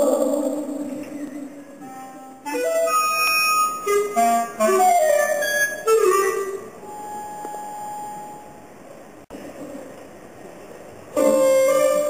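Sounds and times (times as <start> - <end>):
contemporary ensemble music: 0.0 - 8.5, 11.1 - 12.0.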